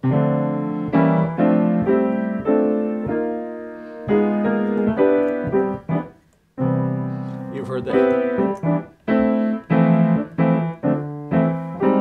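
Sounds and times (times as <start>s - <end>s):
grand piano block chords: 0.0s - 12.0s.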